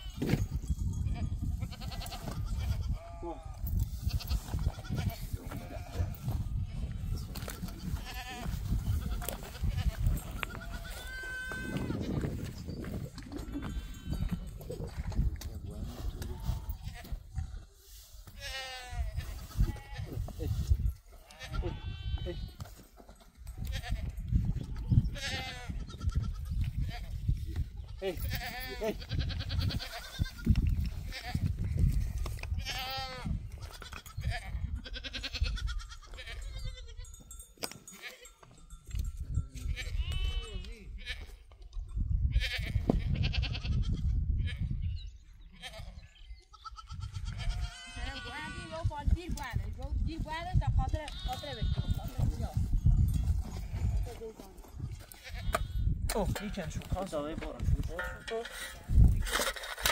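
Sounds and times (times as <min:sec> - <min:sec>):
goats and sheep bleating: 0:00.0 - 0:38.8, 0:39.6 - 0:41.6, 0:42.2 - 0:49.7, 0:50.4 - 0:59.9.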